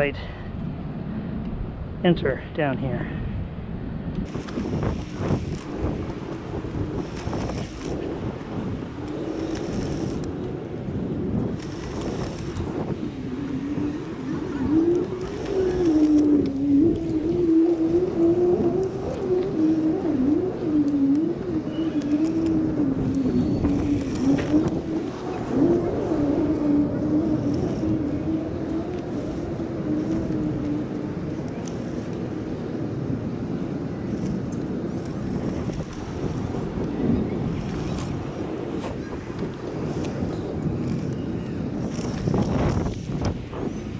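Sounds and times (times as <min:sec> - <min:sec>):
wind noise: 0:00.0 - 0:43.9.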